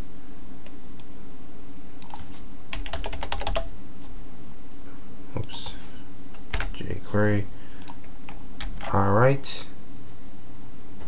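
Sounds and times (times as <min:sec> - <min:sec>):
computer keyboard typing: 0:02.0 - 0:03.7, 0:06.4 - 0:06.8, 0:07.8 - 0:09.0.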